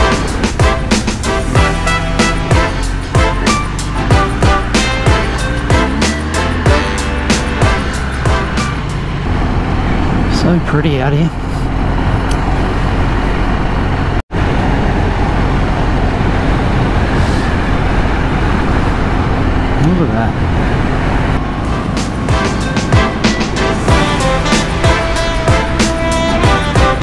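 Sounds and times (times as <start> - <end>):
music with plucked beat: 0.0 - 8.8, 22.0 - 27.0
motorcycle engine: 0.0 - 27.0
wind rush: 11.3 - 27.0.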